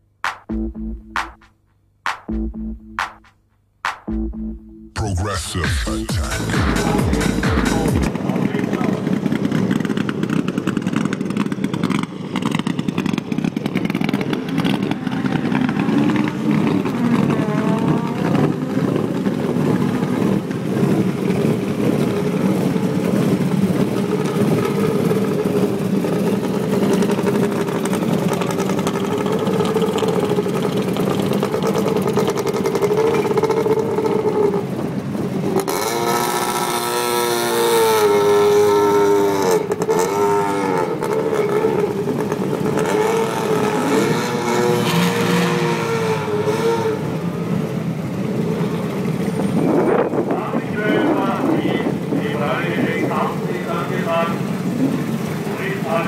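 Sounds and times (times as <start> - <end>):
car engines idling: 4.1 - 56.0
engine revving: 5.8 - 56.0.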